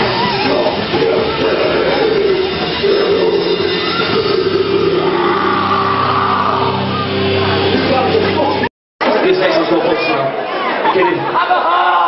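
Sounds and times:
person singing: 0:00.0 - 0:08.2
loud electric guitars: 0:00.0 - 0:08.7.

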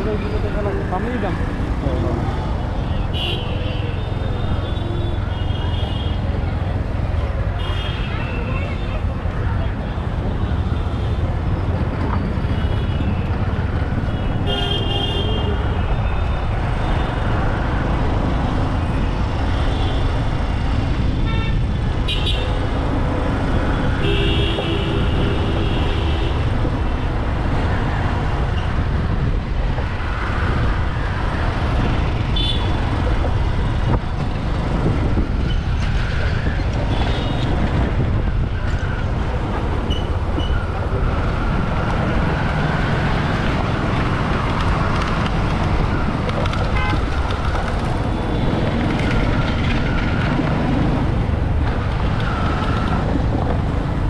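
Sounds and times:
engine and road noise rumble: 0:00.0 - 0:54.0
vehicle horns tooting: 0:46.7 - 0:47.0.

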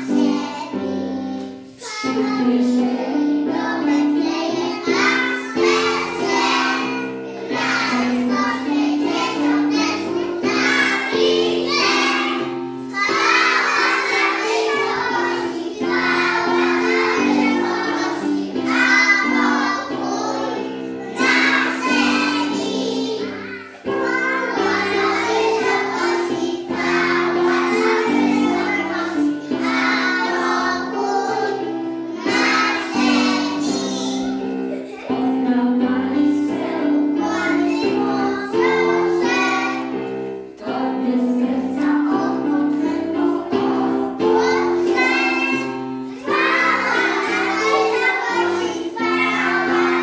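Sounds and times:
children singing: 0:00.0 - 0:50.0
instrumental accompaniment: 0:00.0 - 0:50.0.

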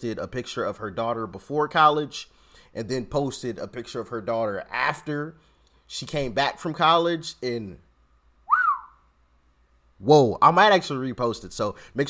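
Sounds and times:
man whistling: 0:08.4 - 0:09.1.

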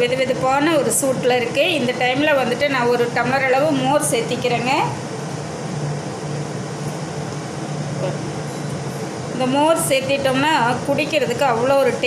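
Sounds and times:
machine hum with hiss: 0:00.0 - 0:12.0.

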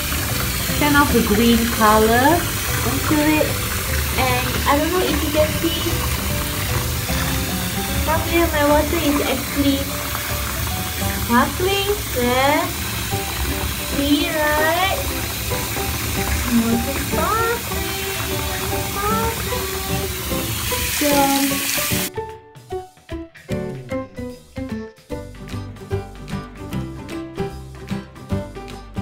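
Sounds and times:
hand sloshing bath water: 0:00.0 - 0:22.1
background music with held notes: 0:00.0 - 0:29.0.

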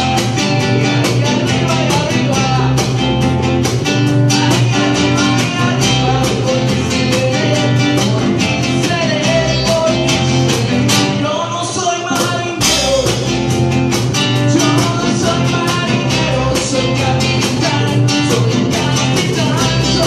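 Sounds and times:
acoustic guitar: 0:00.0 - 0:20.0
bass: 0:00.0 - 0:20.0
cajon beat: 0:00.0 - 0:20.0.

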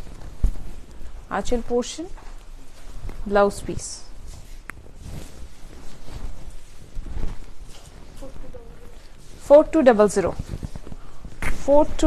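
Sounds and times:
fabric rustling and flapping: 0:00.0 - 0:12.0.

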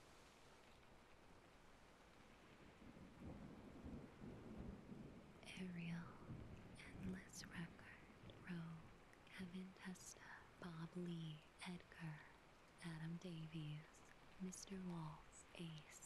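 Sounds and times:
person speaking softly: 0:05.4 - 0:16.0.

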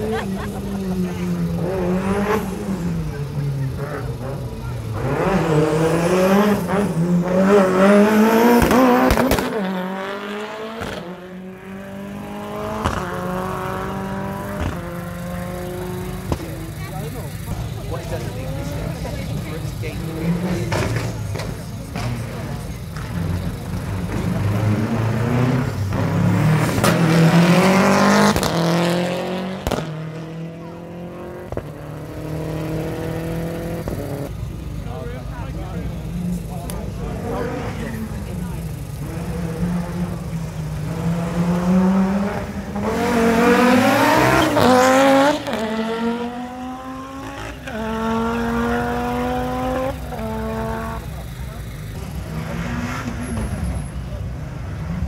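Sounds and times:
rally car engine accelerating: 0:00.0 - 0:55.0.

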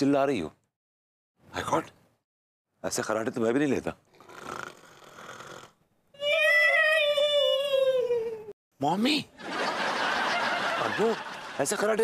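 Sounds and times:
comic voiced snore: 0:04.1 - 0:05.8
studio audience laughter: 0:09.4 - 0:12.0.

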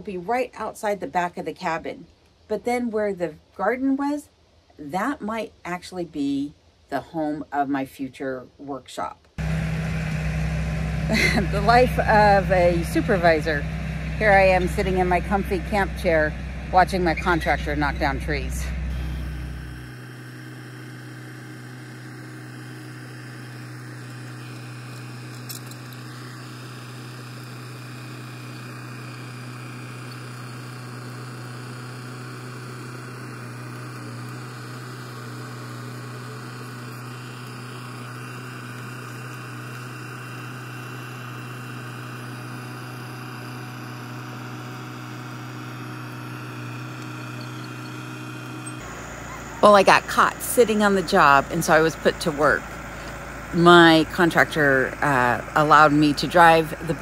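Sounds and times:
bulldozer diesel engine droning: 0:09.4 - 0:57.0.

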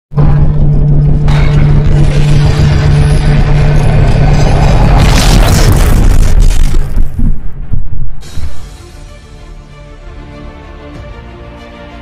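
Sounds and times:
deep boom low drone: 0:00.1 - 0:09.8.

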